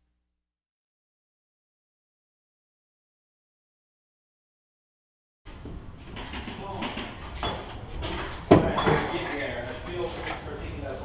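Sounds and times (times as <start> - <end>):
objects knocking and clattering: 5.5 - 9.5.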